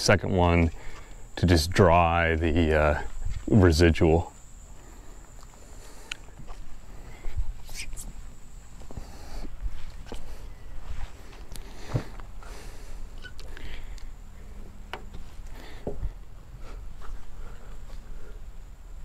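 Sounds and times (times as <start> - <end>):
footsteps: 3.0 - 3.8, 4.7 - 12.3, 15.1 - 18.1.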